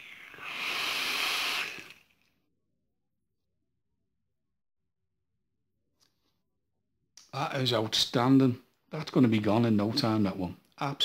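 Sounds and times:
vape coil hissing draw: 0.0s - 2.1s.

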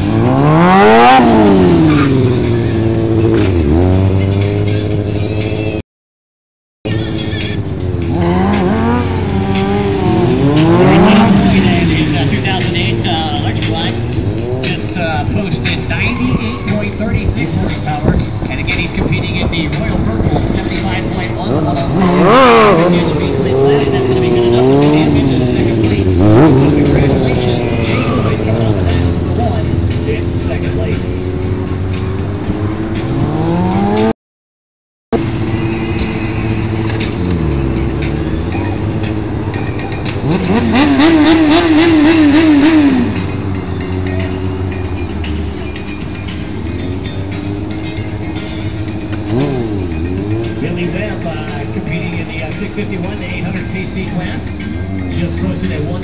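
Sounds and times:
motorcycle engines revving: 0.0s - 5.8s, 6.9s - 34.2s, 35.2s - 56.0s.

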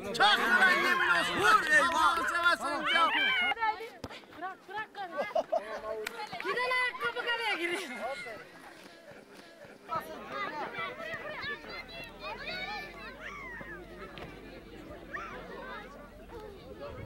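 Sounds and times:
players shouting: 0.0s - 3.9s.

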